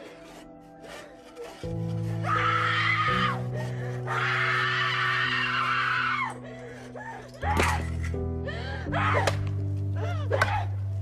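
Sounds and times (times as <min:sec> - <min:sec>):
woman screaming: 0:04.0 - 0:06.4.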